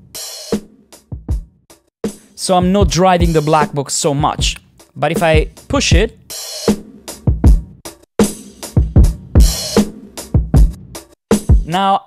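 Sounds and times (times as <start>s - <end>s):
saturated hip-hop drum loop: 0.0s - 12.0s.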